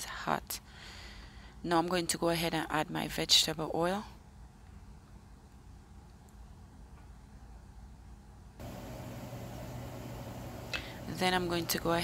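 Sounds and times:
faint low hum: 0.3 - 12.0.

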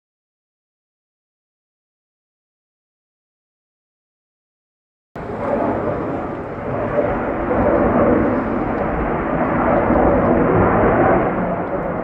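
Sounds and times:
airplane flying past: 5.2 - 12.0.

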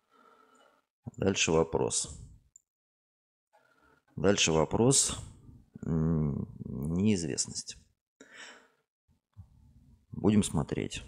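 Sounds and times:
man breathing: 0.0 - 0.9, 8.2 - 8.9.

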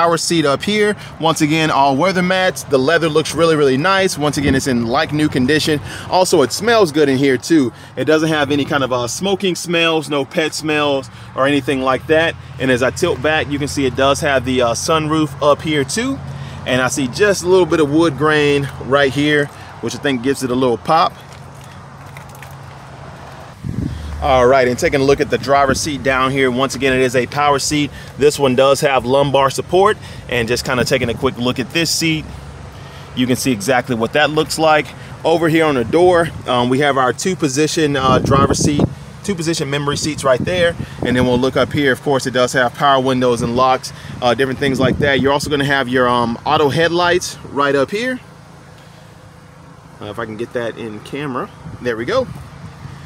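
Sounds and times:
wind on microphone: 23.5 - 24.3
person speaking: 23.8 - 32.4.

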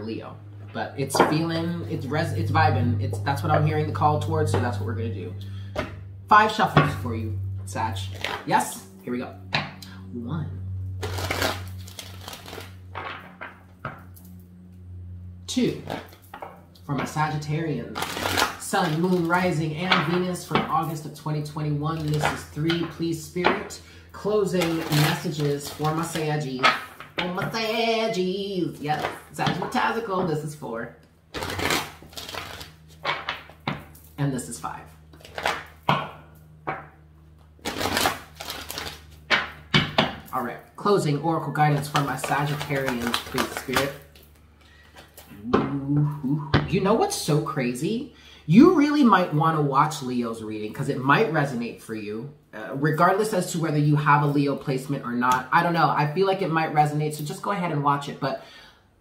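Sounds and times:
low hum: 0.0 - 55.5
cards being shuffled: 8.0 - 8.5, 11.0 - 13.6, 17.8 - 21.0, 21.9 - 23.6, 24.4 - 27.6, 28.8 - 29.8, 31.3 - 36.1, 37.4 - 40.3, 41.1 - 44.4
cards tapping: 41.6 - 44.0.

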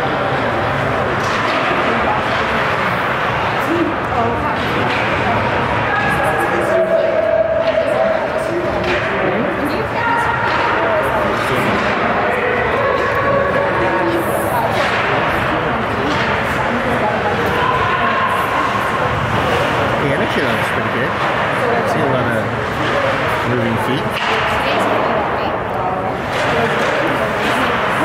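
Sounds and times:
voices shouting in arena: 5.8 - 8.4.

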